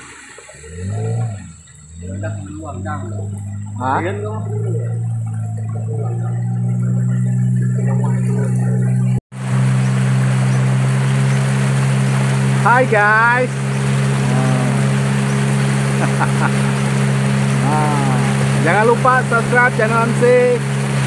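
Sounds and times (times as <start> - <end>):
hiss of water and wind: 0.0 - 21.0
outboard motor humming: 0.0 - 21.0.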